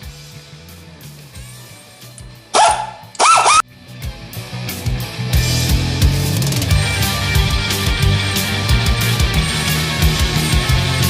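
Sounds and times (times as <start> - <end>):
rock music in background: 0.0 - 11.0
dog barking loudly: 2.6 - 3.6.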